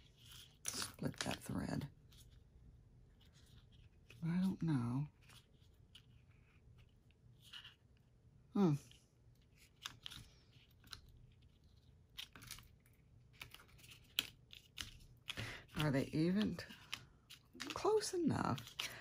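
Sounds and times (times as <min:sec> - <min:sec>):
paper rustling and crinkling: 0:00.0 - 0:02.5, 0:03.1 - 0:04.3, 0:09.4 - 0:19.0.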